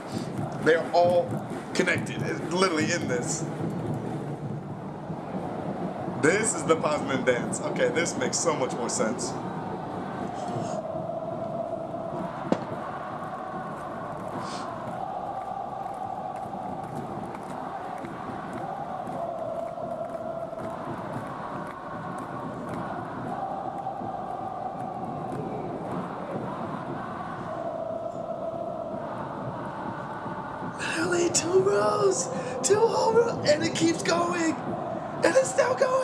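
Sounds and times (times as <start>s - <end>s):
stadium crowd chanting: 0.0s - 36.0s.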